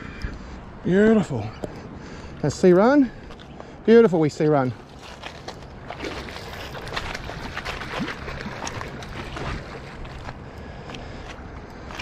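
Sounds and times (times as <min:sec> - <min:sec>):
river water lapping on gravel: 0:02.4 - 0:12.0
small splashes and clicks: 0:05.0 - 0:12.0.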